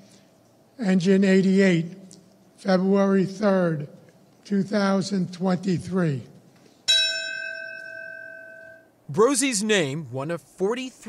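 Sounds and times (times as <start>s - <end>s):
bell strike ringing: 6.9s - 8.9s.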